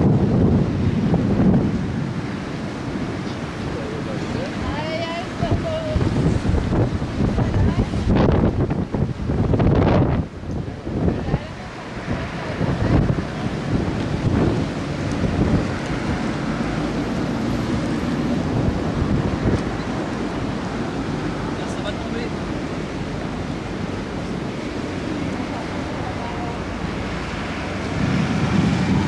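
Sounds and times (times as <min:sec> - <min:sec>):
sea waves on shore: 0:00.0 - 0:29.0
wind buffeting microphone: 0:00.0 - 0:29.0.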